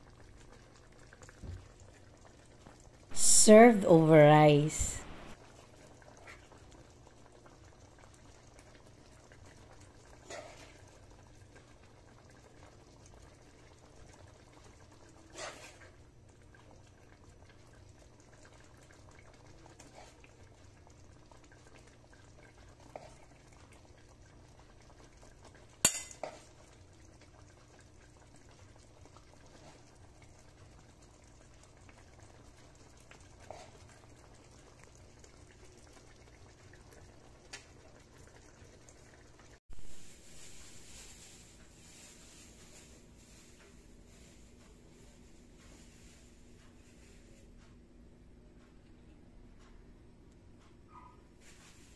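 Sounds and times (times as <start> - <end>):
spoon clinking on pan and plate: 25.8 - 26.3.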